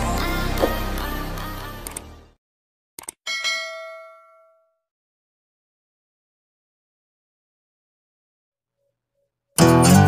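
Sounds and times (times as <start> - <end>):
notification bell ding: 3.3 - 4.8.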